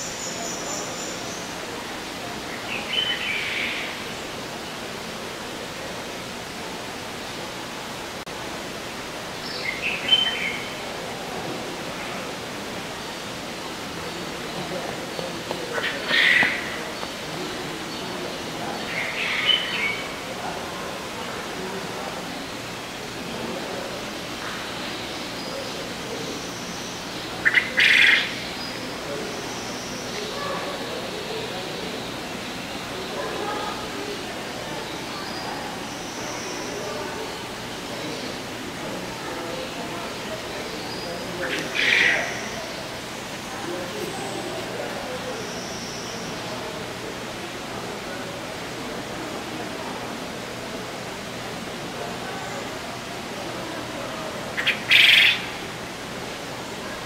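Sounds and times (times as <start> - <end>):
background hiss: 0.0 - 57.0
birds calling: 8.8 - 20.4, 21.0 - 46.7, 54.5 - 55.8.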